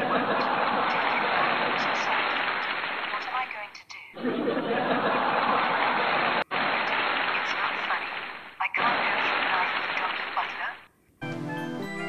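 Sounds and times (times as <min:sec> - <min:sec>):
loud hearty laughter: 0:00.0 - 0:01.6, 0:04.2 - 0:06.3.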